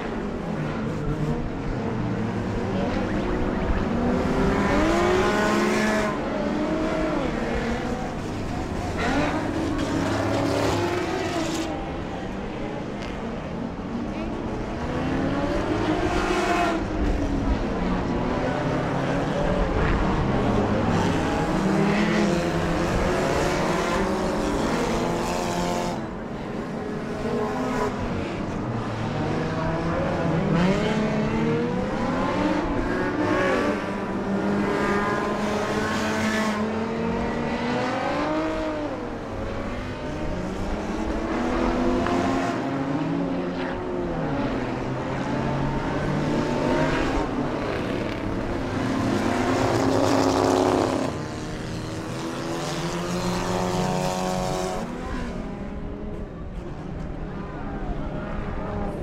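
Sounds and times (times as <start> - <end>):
racing car engines: 0.0 - 59.0.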